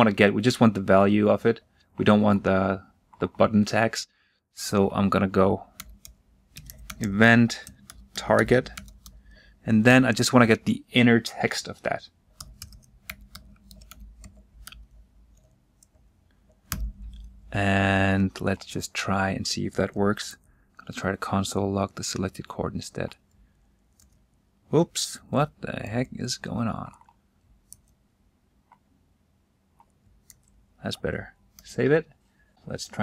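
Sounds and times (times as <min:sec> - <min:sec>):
computer keyboard key clicks: 0:05.7 - 0:09.2, 0:12.4 - 0:15.9, 0:16.6 - 0:17.4.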